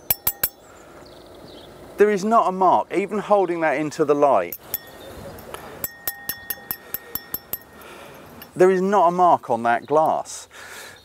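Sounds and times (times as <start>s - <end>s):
glass ringing tone: 0.0s - 0.7s, 4.5s - 8.6s
fork clicking against wine glass: 5.8s - 8.6s.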